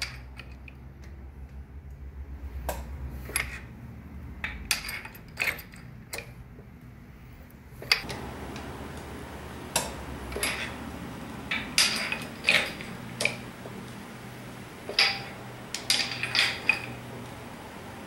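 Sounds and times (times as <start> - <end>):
metallic clicks and clanks: 4.4 - 6.4, 9.7 - 10.8, 11.4 - 17.5.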